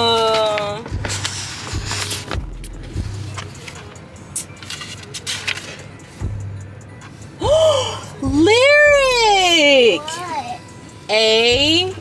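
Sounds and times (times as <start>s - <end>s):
papers and folder rustling: 0.1s - 6.0s.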